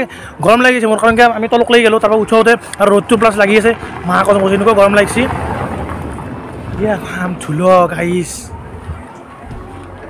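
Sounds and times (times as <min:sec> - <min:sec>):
man talking: 0:00.0 - 0:05.3, 0:06.7 - 0:08.5.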